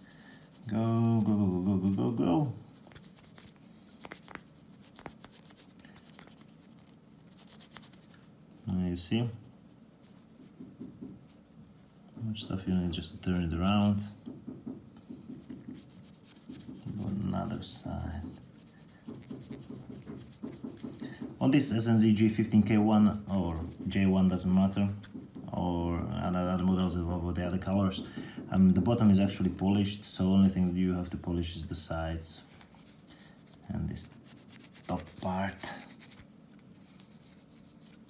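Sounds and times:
pad rubbing on metal watch: 0.0 - 8.4, 15.3 - 25.9, 32.6 - 38.0.

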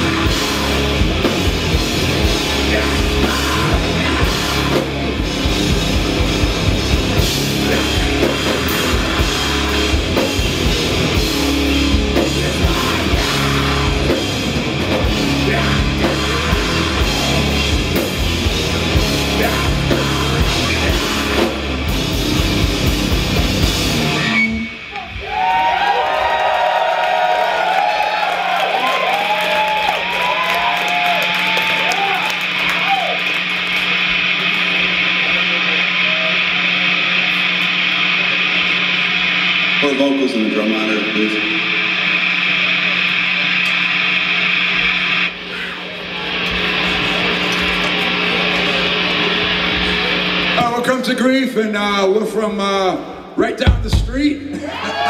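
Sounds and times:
metal band playing: 0.0 - 25.9, 30.3 - 55.0
amplifier hum and hiss: 0.0 - 54.6
crowd cheering: 23.3 - 51.2, 52.8 - 55.0
yells and whoops: 24.9 - 33.4, 54.5 - 55.0.

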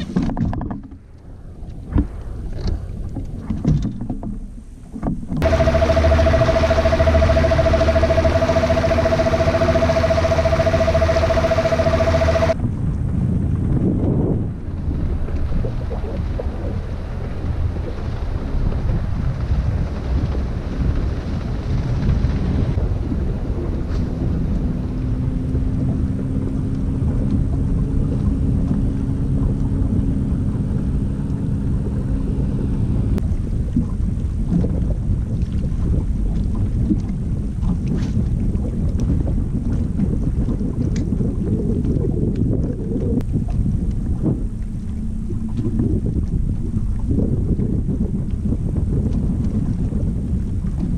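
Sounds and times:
low steady hum: 0.0 - 50.9
wind buffeting microphone: 0.0 - 50.9.

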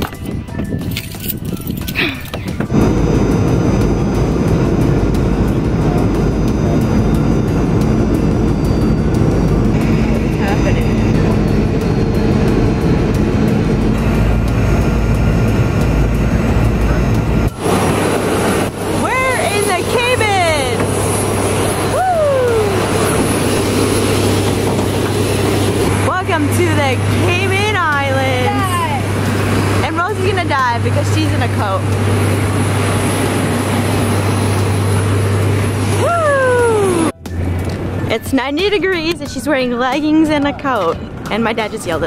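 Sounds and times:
airliner cabin engine roar: 0.0 - 42.0
engine hum with high whine: 0.0 - 42.0
voices: 15.8 - 37.1, 37.9 - 42.0.

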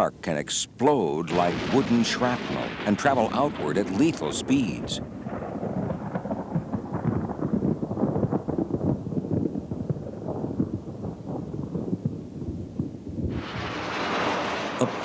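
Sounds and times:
crackling thunder rumble: 1.2 - 15.0
jet engines roaring: 13.4 - 15.0.

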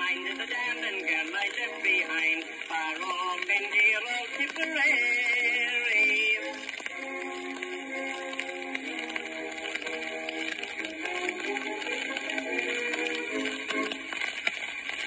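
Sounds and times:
old gramophone band music: 0.0 - 15.0
record hiss: 0.0 - 15.0.

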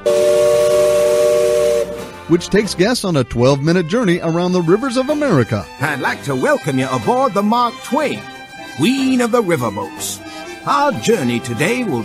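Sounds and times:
steam whistle blast: 0.0 - 2.4.

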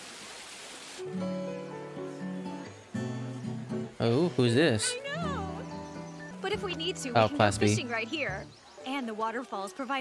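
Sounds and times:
plucked guitar music: 1.0 - 8.6.

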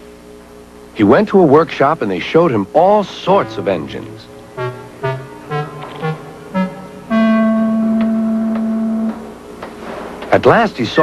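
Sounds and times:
low brass note: 3.4 - 9.4.

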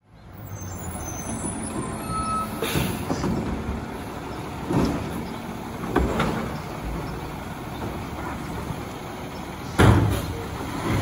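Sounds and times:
garbage truck diesel engine rumbling: 0.0 - 11.0.

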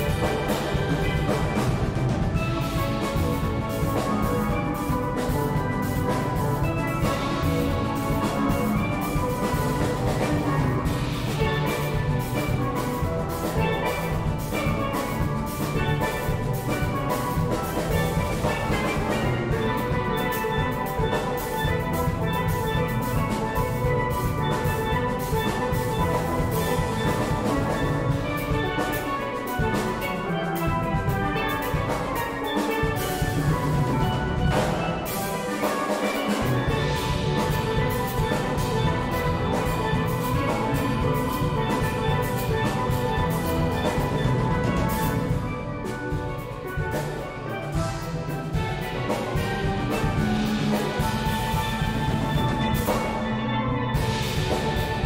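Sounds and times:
drum kit beat: 0.0 - 55.0
steelpans playing melody and chords: 0.0 - 55.0.

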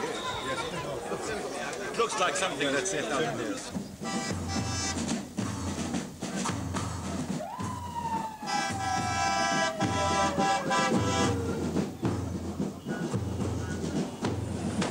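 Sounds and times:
music with low beat: 3.7 - 14.9.

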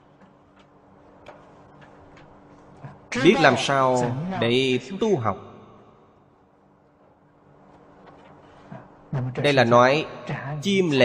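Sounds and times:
faint steady hum: 0.0 - 11.0.

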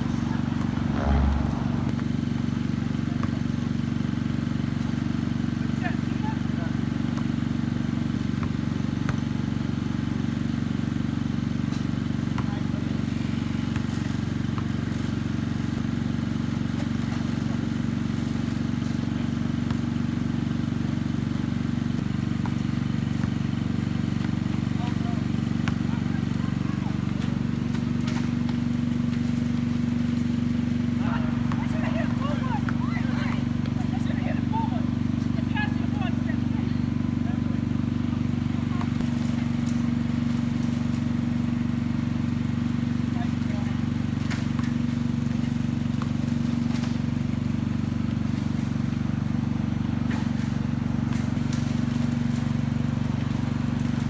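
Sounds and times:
steady low drone: 0.0 - 2.6
basketball bouncing on asphalt: 0.0 - 39.0.

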